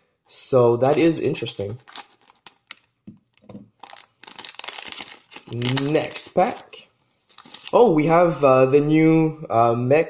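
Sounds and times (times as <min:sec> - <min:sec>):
foil wrapper crinkling: 0:00.9 - 0:07.9.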